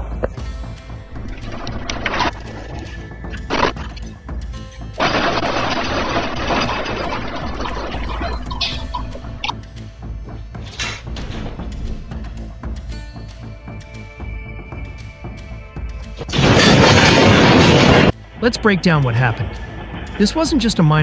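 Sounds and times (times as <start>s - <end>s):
background music: 0.0s - 21.0s
loud rushing noise: 16.4s - 21.0s.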